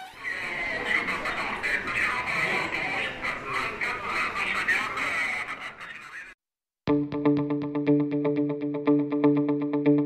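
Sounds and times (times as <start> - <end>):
indistinct voices: 0.0 - 6.3
background noise: 0.0 - 6.4.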